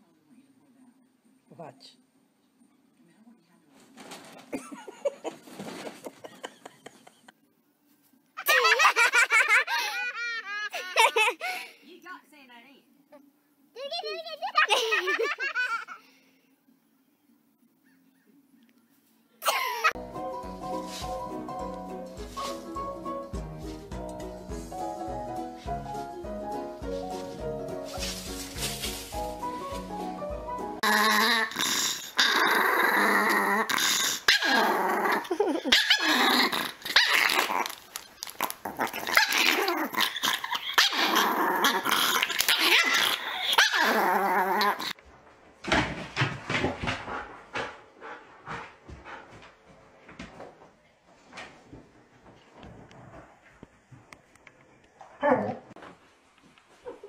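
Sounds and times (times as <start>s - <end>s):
background music: 20.0s - 31.0s
dog growling and barking: 30.8s - 45.0s, 55.2s - 55.8s.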